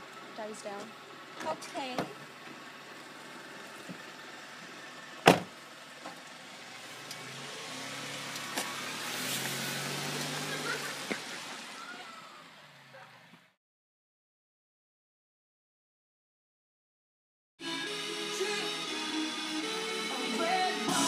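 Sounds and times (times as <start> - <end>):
car door slamming: 5.2 - 5.6
car driving past: 6.3 - 13.6.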